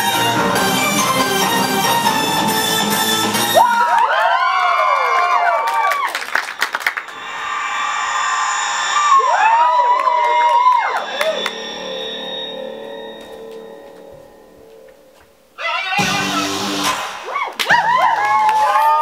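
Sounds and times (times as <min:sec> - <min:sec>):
people clapping: 0:03.6 - 0:07.2, 0:17.4 - 0:19.0
audience cheering and whooping: 0:03.6 - 0:07.6, 0:08.6 - 0:12.0, 0:15.6 - 0:19.0.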